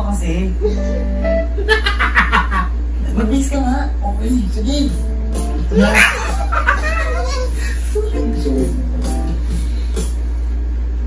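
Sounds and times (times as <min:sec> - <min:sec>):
people laughing: 0:01.6 - 0:02.8, 0:05.6 - 0:08.1
background music: 0:04.9 - 0:06.5, 0:08.0 - 0:10.2
loud vocal cry: 0:05.7 - 0:07.3.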